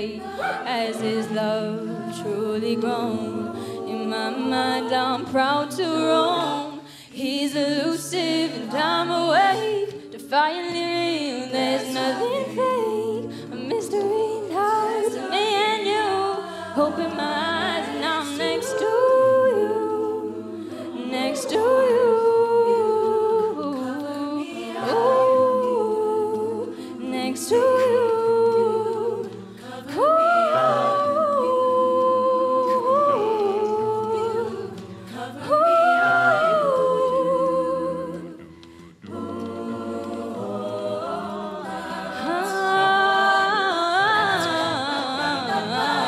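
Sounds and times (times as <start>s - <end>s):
solo female voice singing: 0.0s - 38.4s
a cappella group singing: 0.0s - 46.0s
wordless backing vocal chords: 0.0s - 46.0s.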